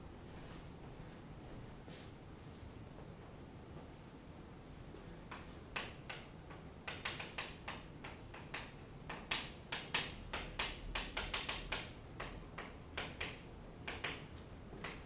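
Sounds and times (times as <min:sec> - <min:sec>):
chalk tapping and scraping on chalkboard: 0:05.3 - 0:15.0.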